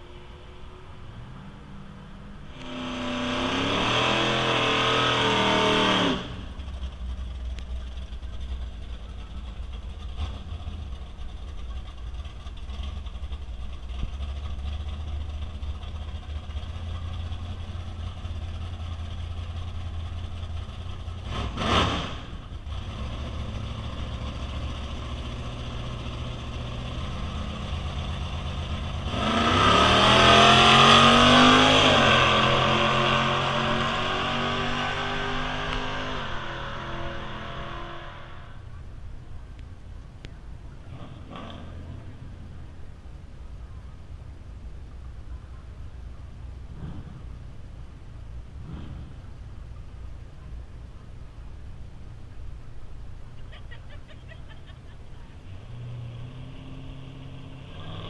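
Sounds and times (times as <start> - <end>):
low engine rumble: 0.0 - 58.0
drag race cars accelerating: 2.2 - 38.7, 40.8 - 42.6, 48.4 - 49.9, 54.0 - 58.0.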